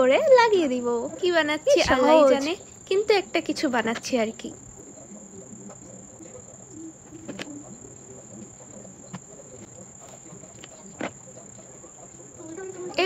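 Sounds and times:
cricket chirring: 0:00.0 - 0:13.0.

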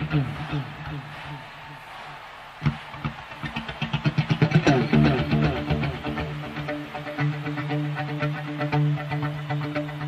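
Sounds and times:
electric guitar with echo delay: 0:03.8 - 0:10.0.

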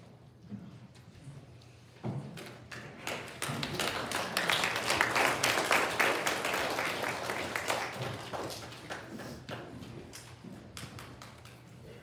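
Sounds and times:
congregation applauding: 0:03.0 - 0:09.8.

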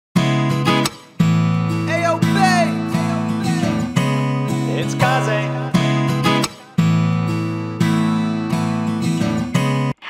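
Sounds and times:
hip-hop beat: 0:00.2 - 0:10.0
strummed guitar chords: 0:00.2 - 0:10.0.

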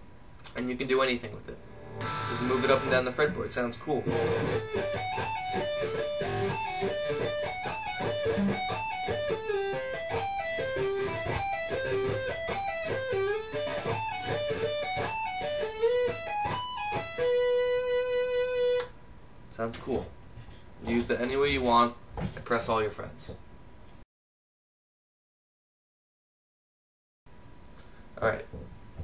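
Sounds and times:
electric guitar arpeggios: 0:01.6 - 0:03.0, 0:04.0 - 0:18.8.

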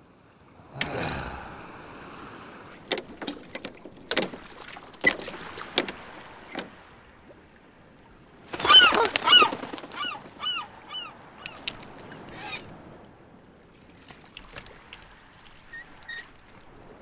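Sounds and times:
oars knocking and creaking: 0:02.7 - 0:07.4, 0:08.5 - 0:12.8, 0:13.8 - 0:17.0
honking squawks: 0:08.6 - 0:11.6.

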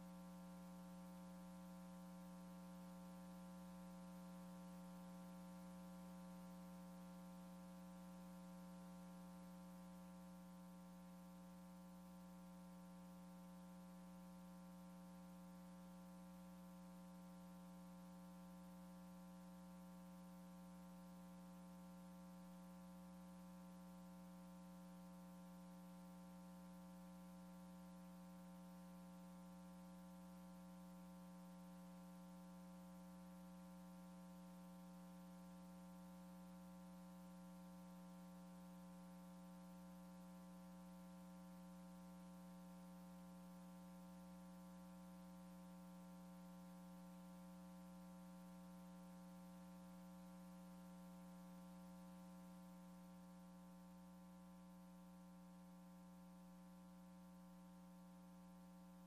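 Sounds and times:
faint electrical hum: 0:00.0 - 0:59.0.

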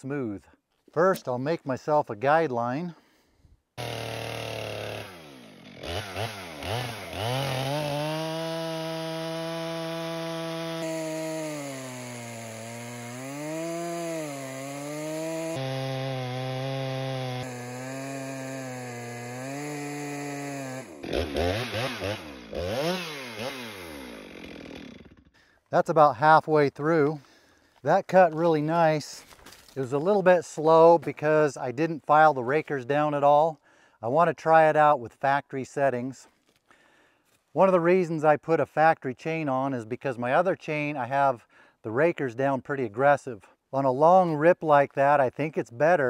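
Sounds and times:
chainsaw cutting log: 0:03.8 - 0:25.4.

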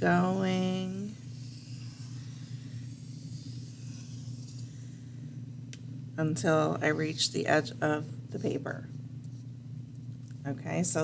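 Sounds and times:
low electrical hum: 0:00.0 - 0:11.0
pencil scratching on paper: 0:00.5 - 0:04.9.

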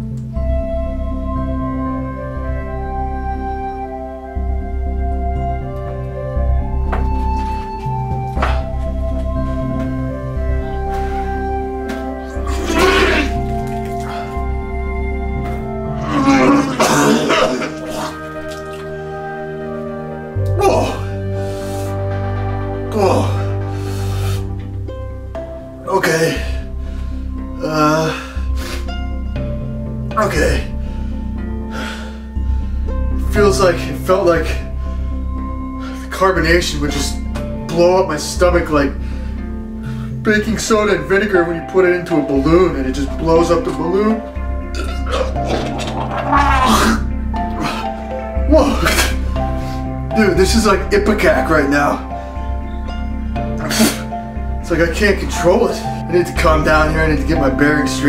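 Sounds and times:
background music: 0:00.0 - 0:58.0
man retching and vomiting: 0:12.4 - 0:14.4, 0:16.0 - 0:19.0, 0:44.7 - 0:49.3, 0:53.6 - 0:54.1
man gagging: 0:12.5 - 0:13.4, 0:16.0 - 0:18.2, 0:44.8 - 0:47.9, 0:48.5 - 0:49.2
liquid gushing and splashing: 0:16.7 - 0:19.0.

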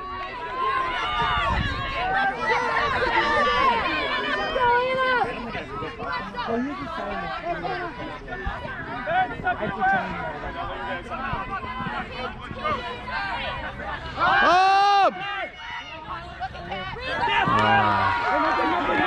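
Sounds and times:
several voices calling out: 0:00.4 - 0:19.0.

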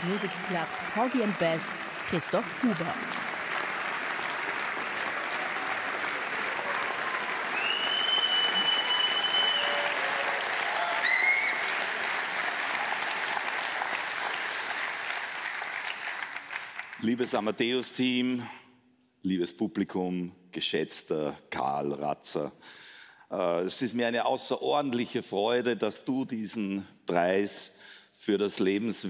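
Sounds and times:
audience applauding: 0:00.0 - 0:17.4
long high whistle: 0:07.5 - 0:10.1, 0:11.0 - 0:11.7
short rising whistle: 0:07.6 - 0:09.9.

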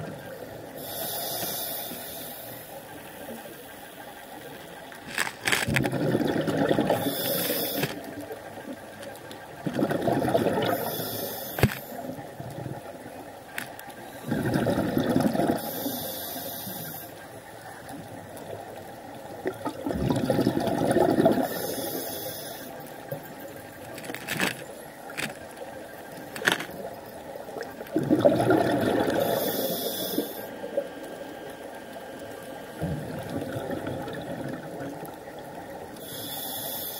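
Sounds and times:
diver breathing through regulator: 0:00.8 - 0:02.8, 0:06.9 - 0:08.0, 0:10.6 - 0:12.2, 0:15.4 - 0:17.2, 0:21.4 - 0:22.8, 0:29.1 - 0:30.6, 0:36.0 - 0:36.9
bubbling exhalation: 0:05.7 - 0:07.2, 0:09.6 - 0:10.8, 0:14.3 - 0:15.6, 0:19.5 - 0:21.5, 0:27.9 - 0:29.4.

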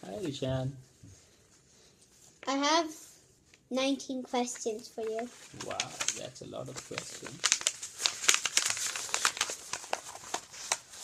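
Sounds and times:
paper rustling and crinkling: 0:04.4 - 0:11.0.

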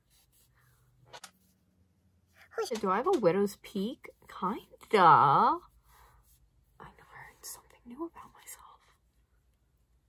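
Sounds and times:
woman whispering: 0:06.8 - 0:09.0.

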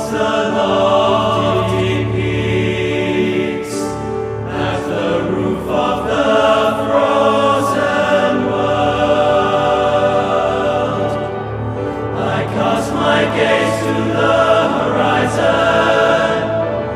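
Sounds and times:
boys' choir singing chords: 0:00.0 - 0:16.9.

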